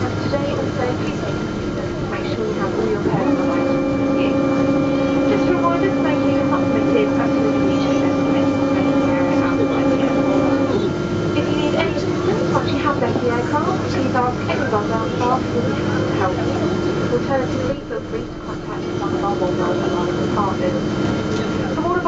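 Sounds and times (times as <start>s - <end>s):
aircraft cabin drone: 0.0s - 22.0s
passengers chattering: 0.0s - 22.0s.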